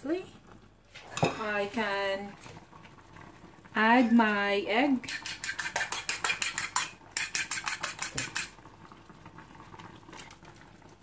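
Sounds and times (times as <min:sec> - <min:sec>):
metal utensil beating egg in bowl: 0:05.0 - 0:08.6.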